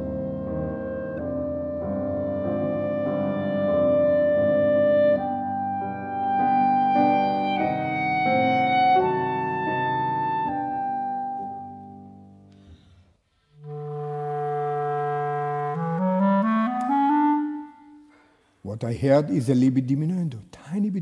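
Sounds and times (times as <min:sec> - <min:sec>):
piano accompaniment: 0:00.0 - 0:12.9
clarinet melody: 0:00.0 - 0:18.5.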